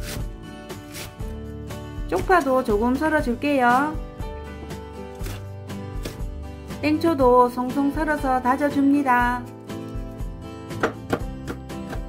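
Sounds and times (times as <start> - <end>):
background music: 0.0 - 12.0
knife knocking on cutting board: 10.8 - 12.0.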